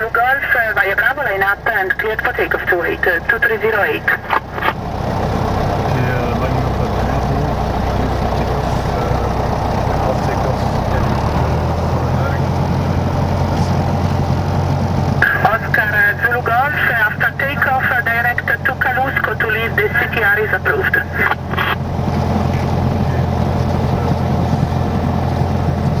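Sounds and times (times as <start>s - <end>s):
radio voice: 0.0s - 4.8s, 5.9s - 9.4s, 15.2s - 21.8s
light aircraft engine and propeller: 0.0s - 26.0s.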